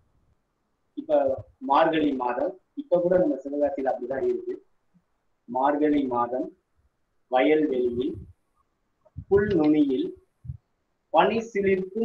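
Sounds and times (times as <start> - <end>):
man speaking: 1.0 - 4.6, 5.5 - 6.5, 7.3 - 8.2, 9.2 - 10.2, 11.2 - 12.0.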